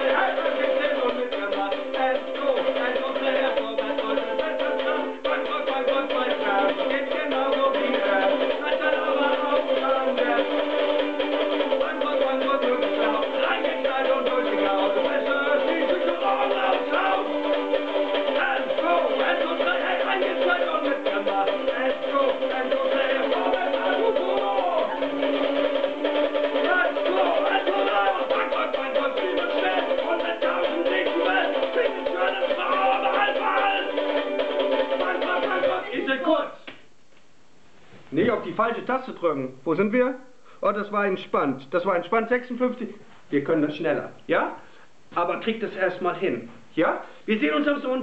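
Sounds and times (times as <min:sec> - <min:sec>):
man singing: 0:00.0 - 0:25.4, 0:26.4 - 0:36.7
ukuleles strumming fast: 0:00.0 - 0:36.6.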